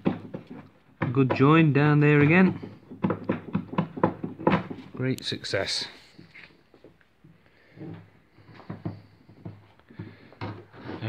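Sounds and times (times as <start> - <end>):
light knocks and taps: 0.0 - 5.0, 6.3 - 10.7.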